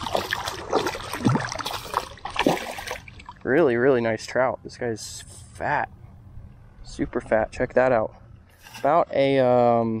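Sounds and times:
fish splashing at surface: 0.0 - 3.4.

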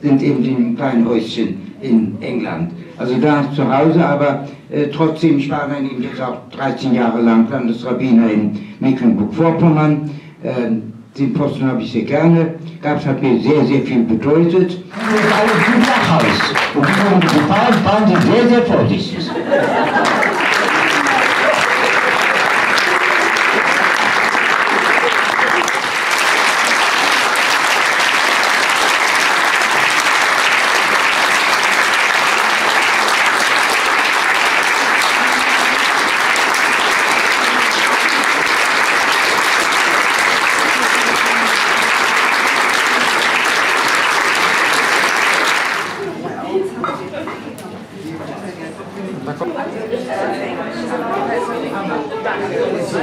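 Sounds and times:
audience applauding: 14.9 - 18.7, 19.5 - 46.2.

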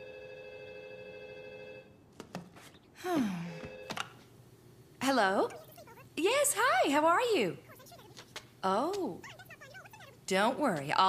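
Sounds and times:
telephone ringing: 0.0 - 2.0, 3.5 - 4.2.

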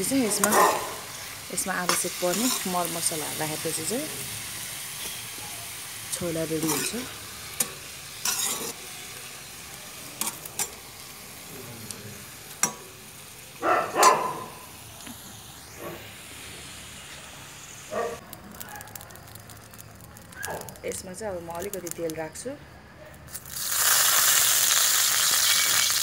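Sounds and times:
frying sizzle: 0.0 - 22.5, 23.2 - 26.0
metal ladle scraping a wok: 0.4 - 2.8, 6.6 - 8.8.

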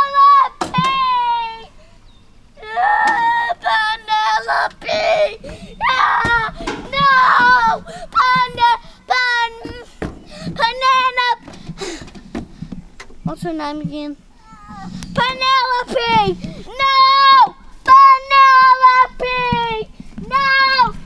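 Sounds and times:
child wailing sing-song: 0.0 - 1.8, 2.6 - 9.9, 14.4 - 21.0.

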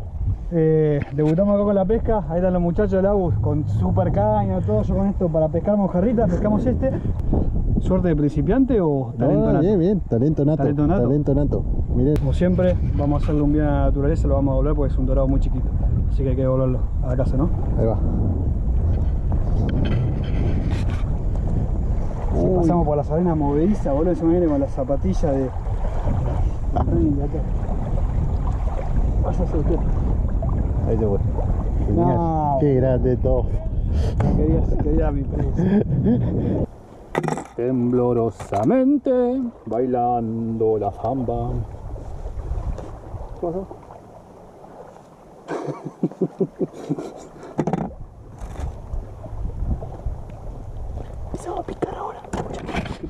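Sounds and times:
wind buffeting microphone: 0.0 - 46.1, 46.8 - 53.0.

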